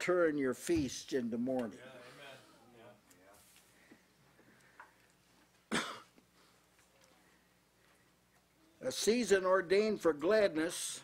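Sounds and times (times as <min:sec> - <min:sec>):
man coughing: 0:05.7 - 0:06.2.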